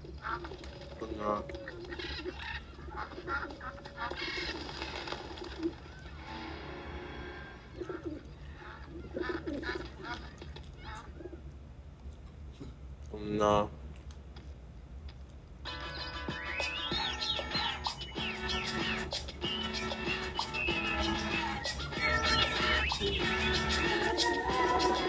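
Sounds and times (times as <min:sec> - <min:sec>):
pigeons cooing on tv: 0:00.0 - 0:11.5, 0:15.6 - 0:25.0.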